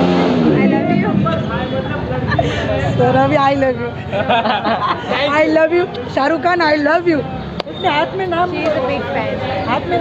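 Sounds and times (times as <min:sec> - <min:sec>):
people talking at once: 0:00.4 - 0:10.0.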